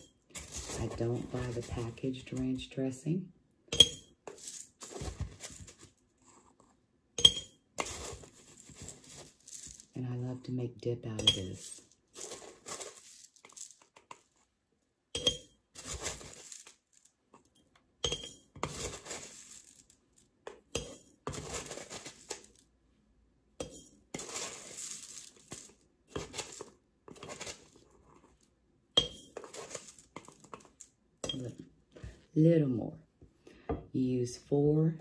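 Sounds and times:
dry flakes rustling and scraping: 0:00.3 - 0:02.6, 0:04.2 - 0:06.6, 0:07.8 - 0:10.2, 0:11.4 - 0:14.5, 0:15.7 - 0:17.2, 0:18.6 - 0:20.3, 0:21.2 - 0:22.7, 0:24.0 - 0:28.5, 0:29.2 - 0:30.9
spoon clinking on glass jar: 0:03.7 - 0:04.1, 0:07.2 - 0:07.6, 0:15.2 - 0:15.5, 0:18.0 - 0:18.4, 0:29.0 - 0:29.4.

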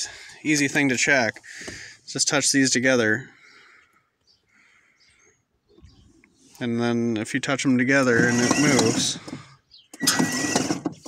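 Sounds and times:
electric motor and gearbox whirring: 0:07.9 - 0:11.0.

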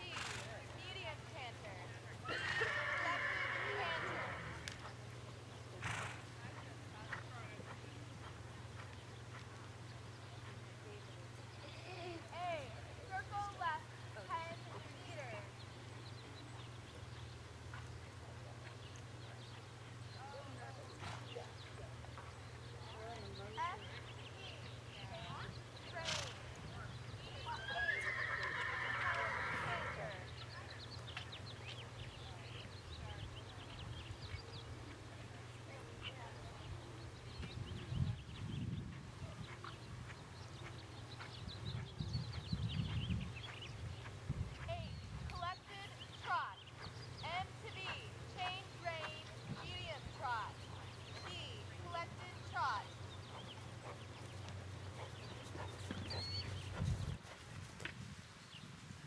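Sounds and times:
horse whinnying: 0:02.3 - 0:04.7, 0:27.6 - 0:30.1.

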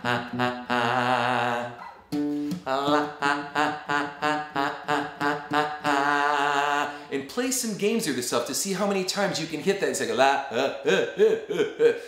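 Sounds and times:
acoustic guitar: 0:00.0 - 0:07.1
man singing la notes: 0:00.0 - 0:08.2.

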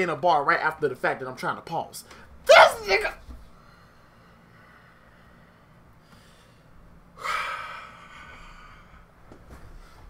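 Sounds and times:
man gasping: 0:07.2 - 0:09.1.

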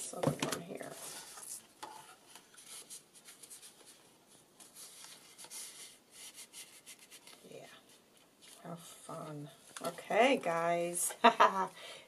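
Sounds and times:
paper rustling and scraping: 0:00.8 - 0:08.8.

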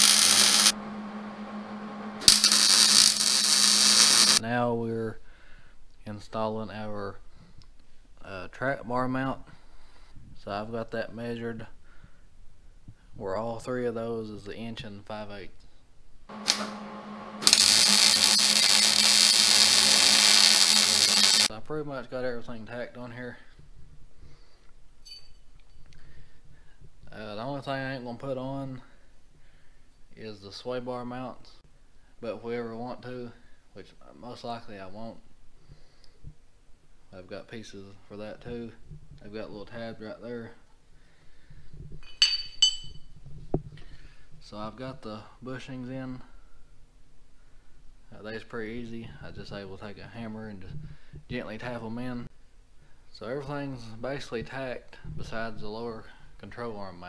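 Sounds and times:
welding arc sizzling: 0:00.0 - 0:00.8, 0:01.6 - 0:04.4, 0:16.3 - 0:21.5
welder low hum: 0:00.0 - 0:04.4, 0:16.3 - 0:21.5
metal pieces clinking together: 0:42.0 - 0:43.0.

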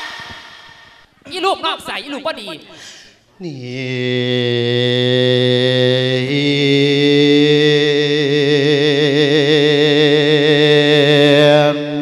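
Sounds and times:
man singing into a microphone: 0:03.4 - 0:12.0.

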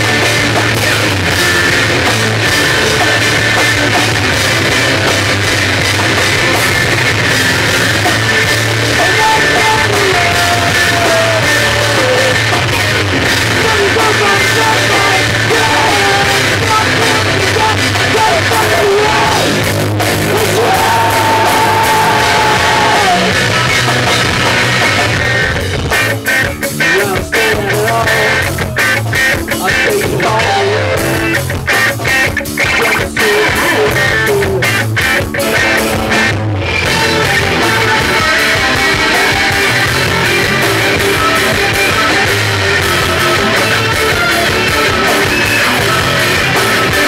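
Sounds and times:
electric guitar sliding high notes: 0:00.0 - 0:47.0
rock band playing live: 0:00.0 - 0:47.0.

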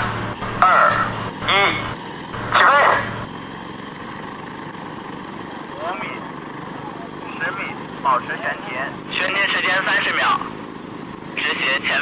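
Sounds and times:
electric propellers whirring: 0:00.0 - 0:06.7.

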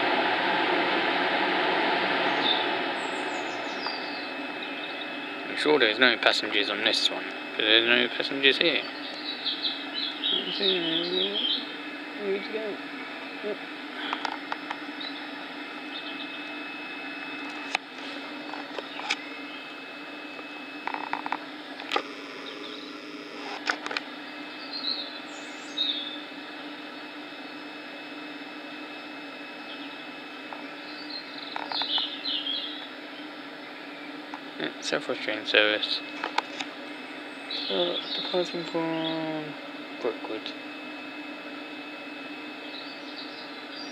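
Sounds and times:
electric train humming: 0:00.0 - 0:43.9
birds chirping: 0:02.2 - 0:16.6, 0:18.6 - 0:19.8, 0:22.1 - 0:23.4, 0:24.5 - 0:27.8, 0:29.6 - 0:39.3, 0:42.5 - 0:43.9.

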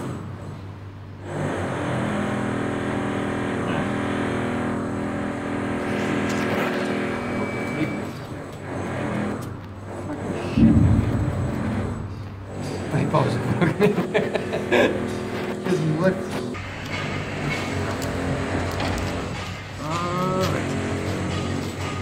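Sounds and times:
vehicle engine running: 0:08.1 - 0:13.4
short low rumble: 0:10.5 - 0:12.5.

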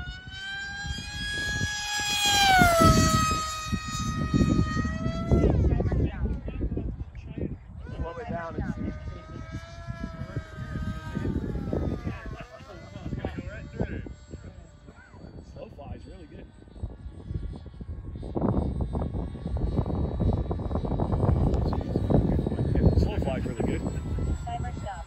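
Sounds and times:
electric motor whine: 0:00.0 - 0:25.0.

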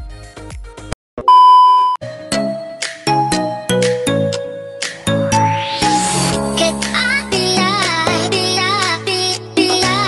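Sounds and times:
loud steady electronic beep: 0:01.3 - 0:02.0
background music: 0:02.0 - 0:10.0.

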